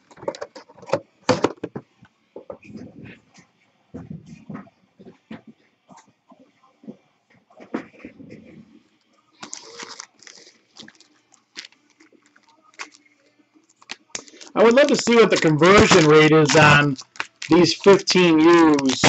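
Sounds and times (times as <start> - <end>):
foil packs crinkling: 9.4 - 13.1, 13.7 - 19.0.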